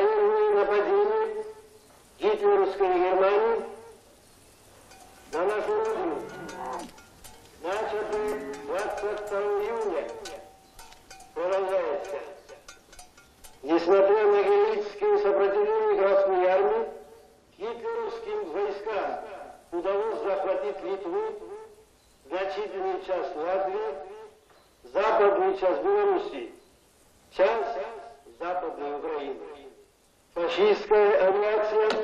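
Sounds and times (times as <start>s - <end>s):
high voice singing over loudspeakers: 5.4s - 6.9s, 7.6s - 10.4s.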